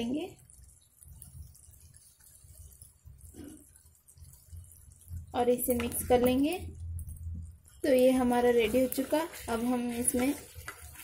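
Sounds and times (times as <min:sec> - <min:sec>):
gravy simmering crackle: 0:00.0 - 0:11.0.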